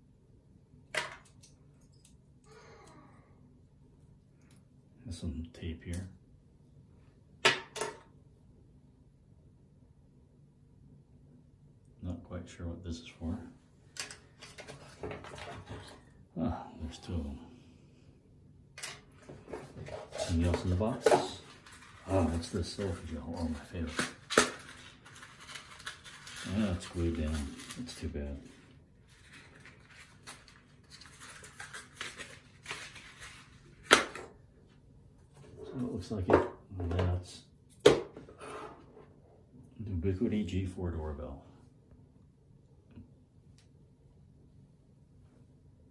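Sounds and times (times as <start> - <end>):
packaging rustling: 19.4 - 34.0.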